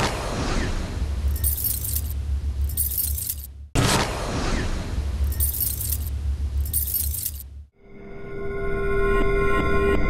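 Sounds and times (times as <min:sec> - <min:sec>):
metallic jangling: 0:01.3 - 0:03.5, 0:05.3 - 0:07.6.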